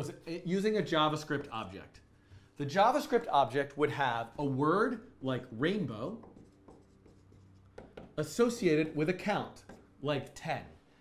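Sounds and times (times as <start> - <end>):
marker squeaking on whiteboard: 6.1 - 9.0.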